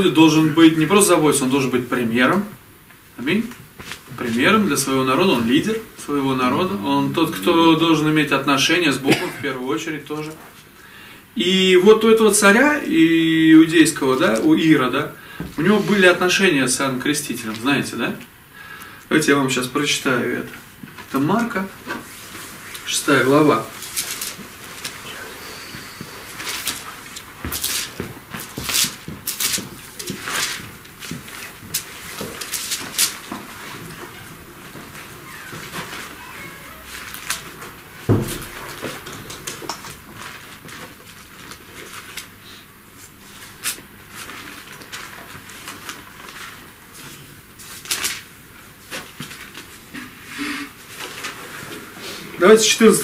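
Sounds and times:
paper rustling: 0:20.9 - 0:42.4, 0:43.0 - 0:49.8, 0:50.9 - 0:51.8.

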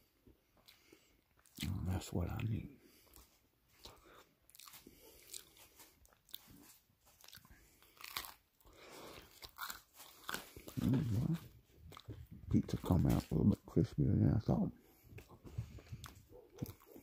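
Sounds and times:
crunching pizza crust: 0:03.0 - 0:13.5.

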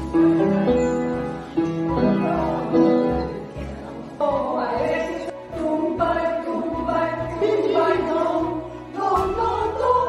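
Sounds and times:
women's choir singing: 0:02.0 - 0:10.0.

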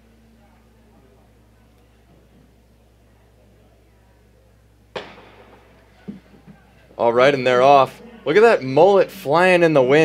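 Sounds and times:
starting gun crack: 0:05.0 - 0:06.2.

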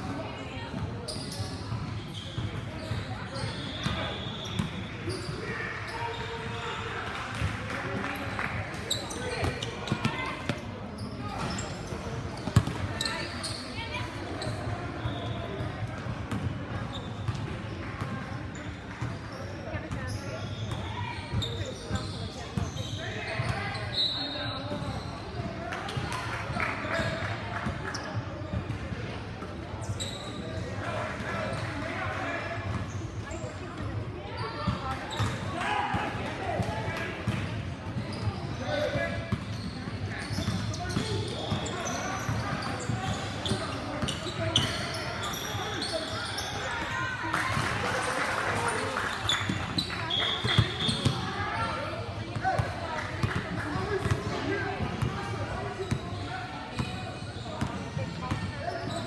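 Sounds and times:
basketball bouncing on court: 0:12.4 - 0:12.9, 0:49.4 - 0:51.3, 0:52.4 - 0:55.2.

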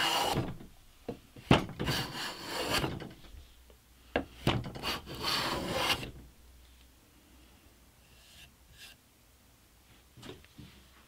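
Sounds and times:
plane cutting wood: 0:00.0 - 0:00.6, 0:01.8 - 0:03.1, 0:04.7 - 0:06.1.

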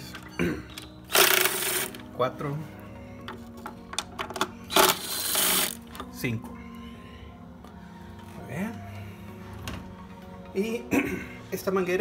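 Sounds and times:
impact wrench burst: 0:01.1 - 0:01.9.

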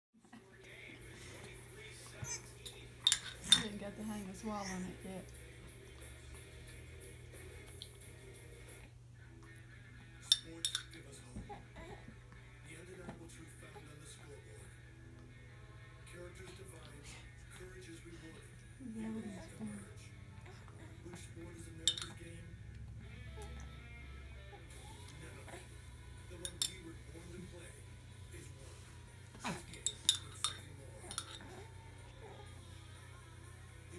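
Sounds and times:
metal spoon clinking on glass jar: 0:02.6 - 0:03.8, 0:10.3 - 0:11.0, 0:21.8 - 0:22.2, 0:26.4 - 0:26.9, 0:29.7 - 0:31.6.

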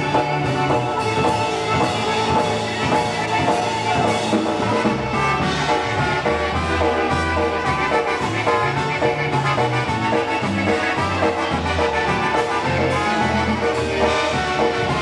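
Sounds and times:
accordions: 0:00.0 - 0:15.0
bass guitar line: 0:00.0 - 0:15.0
trumpets: 0:00.0 - 0:15.0.

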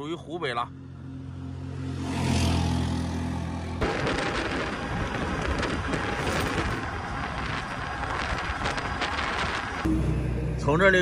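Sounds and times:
wind buffeting microphone: 0:03.8 - 0:09.9.

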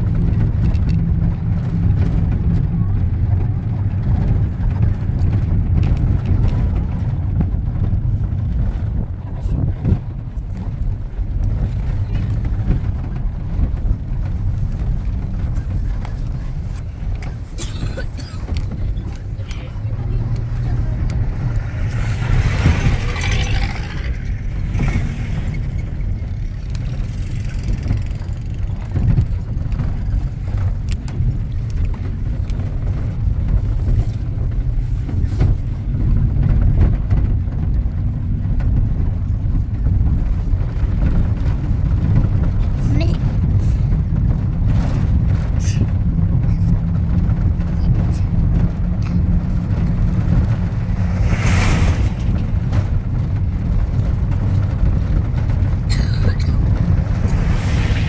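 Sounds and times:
vehicle rumbling on dirt road: 0:00.0 - 0:58.0.

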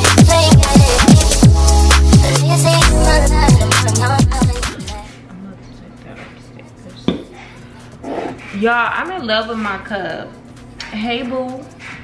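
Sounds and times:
ceramic mug knocking on counter: 0:07.1 - 0:07.3.

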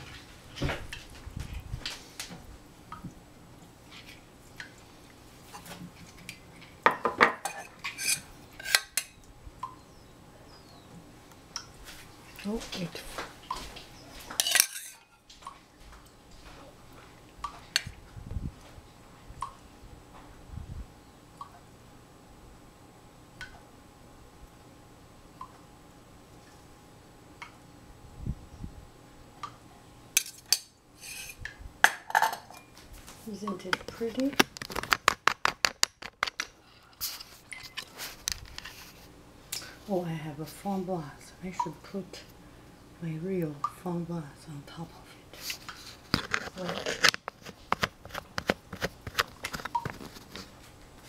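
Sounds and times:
metal spoon clinking against dishes: 0:14.4 - 0:15.1, 0:30.2 - 0:31.3.

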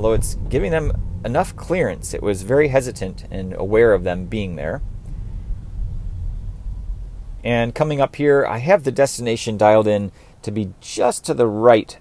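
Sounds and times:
road rumble inside car cabin: 0:00.0 - 0:08.6.

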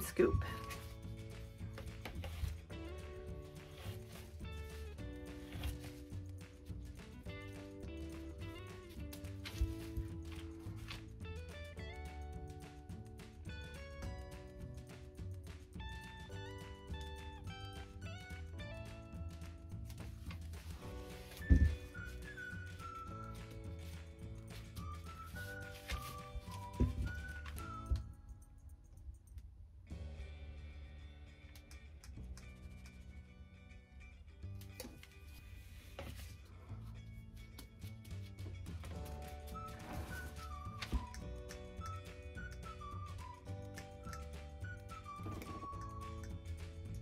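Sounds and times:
background music: 0:00.0 - 0:47.0.

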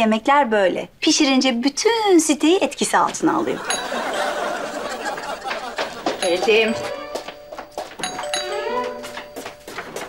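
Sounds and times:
doorbell chime ringing: 0:03.6 - 0:10.0.

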